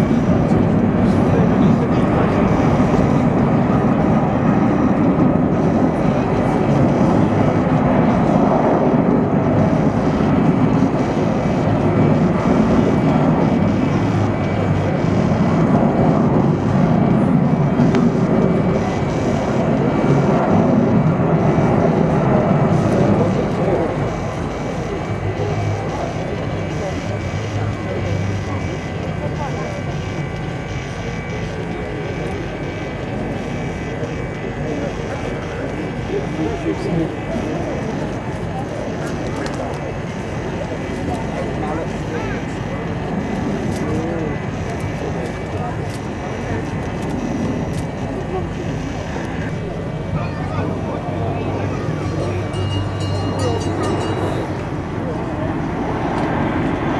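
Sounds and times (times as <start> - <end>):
jet aircraft flying past: 0.0 - 56.9.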